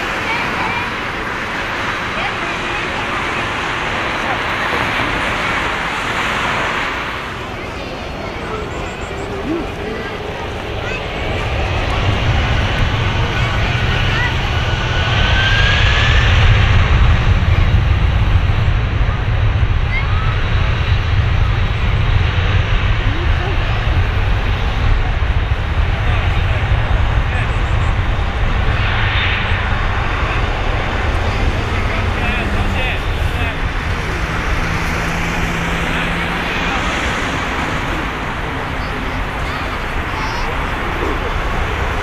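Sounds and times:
jet engines rumbling: 0:00.0 - 0:42.0.

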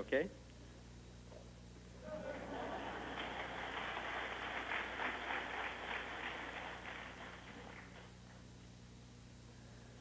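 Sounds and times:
children clapping: 0:02.5 - 0:08.1.

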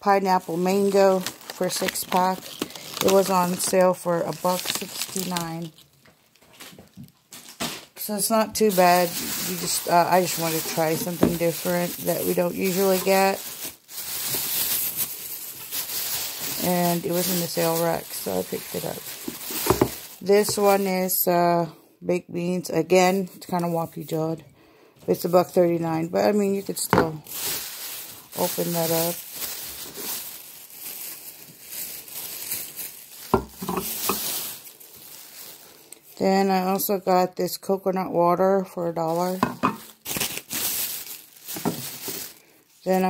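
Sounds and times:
plastic bags crinkling: 0:00.0 - 0:21.5, 0:25.2 - 0:36.9, 0:39.0 - 0:43.0.

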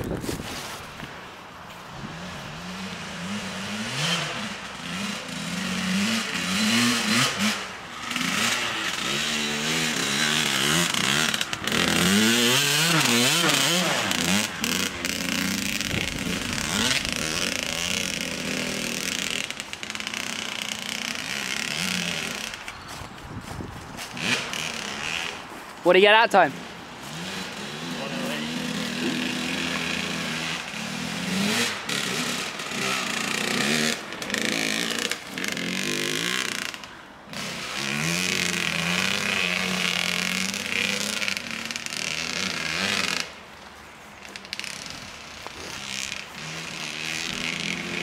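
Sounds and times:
dirt bike engine revving: 0:01.9 - 0:43.5, 0:44.1 - 0:48.0.

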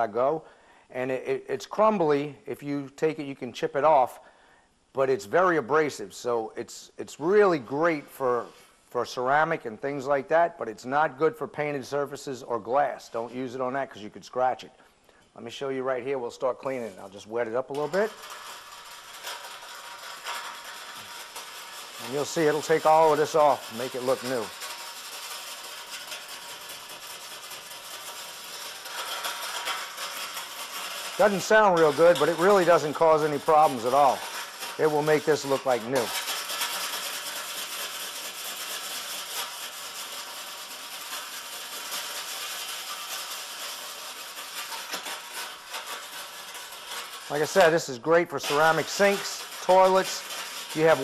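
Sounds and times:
pumice stick scrubbing stove top: 0:16.6 - 0:51.0.

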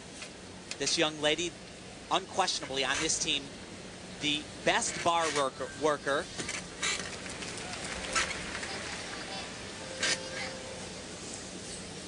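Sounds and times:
arena crowd murmur: 0:07.2 - 0:11.6.

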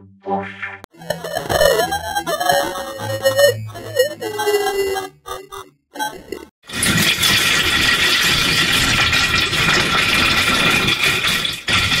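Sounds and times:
harsh distorted noise: 0:00.9 - 0:06.5.

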